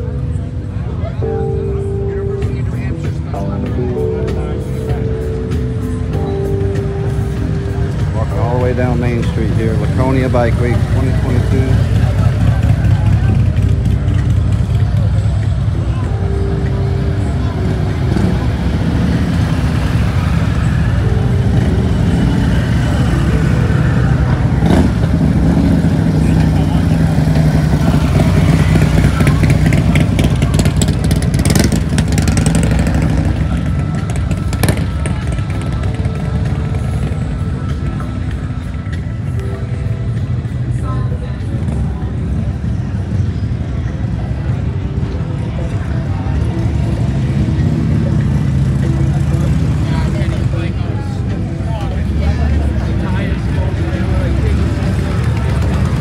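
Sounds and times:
background music: 0:00.0 - 0:56.0
crowd voices: 0:00.0 - 0:56.0
motorcycle engines rumbling: 0:00.0 - 0:56.0.

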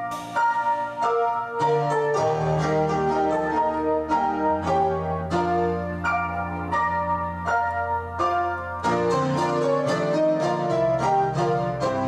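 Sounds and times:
slow piano melody: 0:00.0 - 0:12.0.

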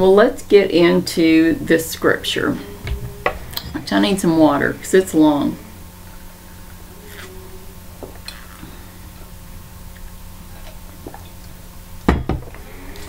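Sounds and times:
steady low hum: 0:00.0 - 0:13.0
person drinking and swallowing: 0:08.0 - 0:11.5.

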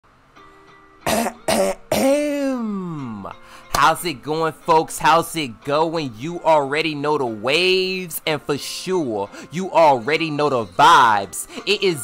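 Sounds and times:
man clearing his throat: 0:01.1 - 0:02.6
man coughing: 0:01.1 - 0:02.7.

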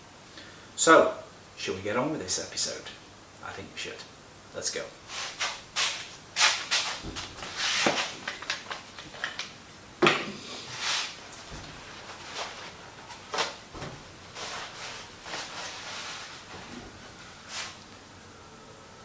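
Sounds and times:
paper towel rustling and tearing: 0:05.1 - 0:09.4, 0:14.3 - 0:16.6.

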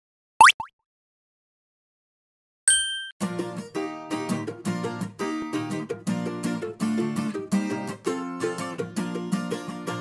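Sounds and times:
cartoon pop bloop: 0:00.4 - 0:00.7.

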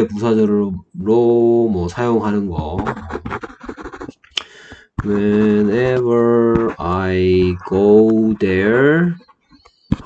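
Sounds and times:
stylus scratching on tablet screen: 0:02.0 - 0:04.2, 0:04.9 - 0:10.0.

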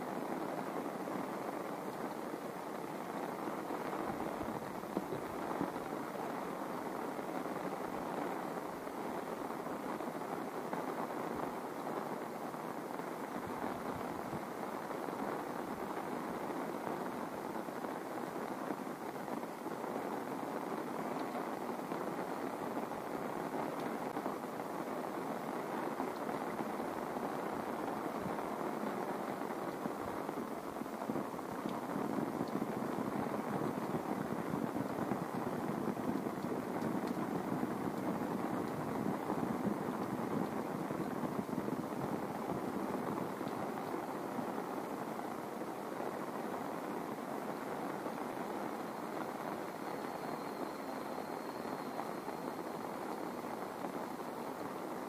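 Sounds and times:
heavy rain falling: 0:00.0 - 0:55.0.

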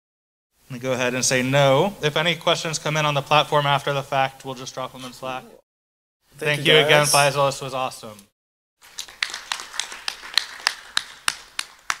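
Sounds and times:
loud hand clapping: 0:08.8 - 0:12.0
faint applause: 0:09.0 - 0:12.0.

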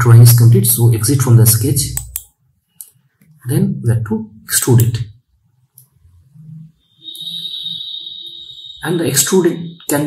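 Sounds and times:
steady high-pitched tone: 0:06.1 - 0:10.0.

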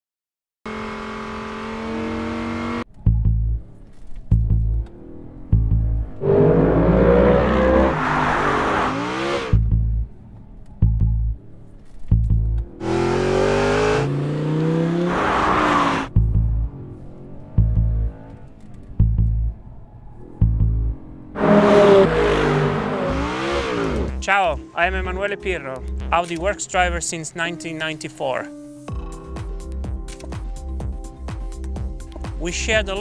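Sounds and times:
sports car engine accelerating: 0:00.7 - 0:24.7.

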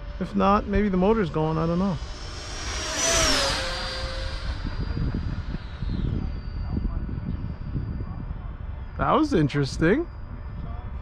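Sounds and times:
model jet fan whine: 0:00.0 - 0:11.0.

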